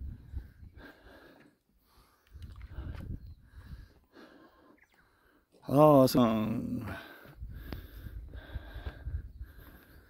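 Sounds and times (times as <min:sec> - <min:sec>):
wind buffeting microphone: 0:00.0 - 0:01.0, 0:02.3 - 0:04.0, 0:07.3 - 0:10.0.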